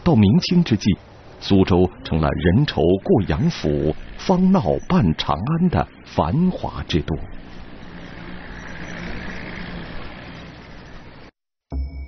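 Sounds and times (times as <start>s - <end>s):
barge engines humming: 0.0s - 11.3s.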